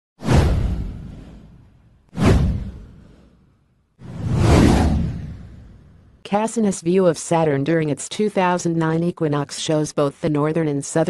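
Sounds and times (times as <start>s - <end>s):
whoosh sound effects: 0.2s - 3.4s, 4.0s - 6.1s.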